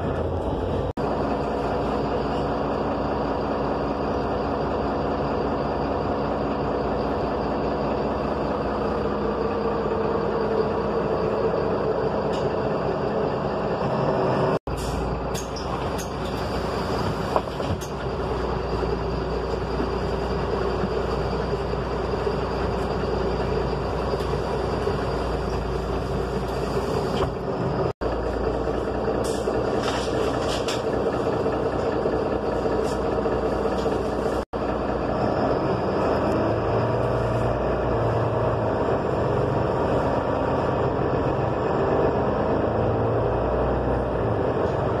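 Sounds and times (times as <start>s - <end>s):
bus engine rumble: 0.0s - 45.0s.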